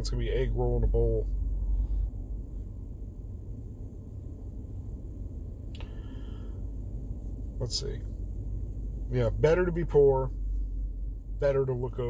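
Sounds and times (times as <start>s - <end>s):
low rumble in vehicle cab: 0.0s - 12.0s.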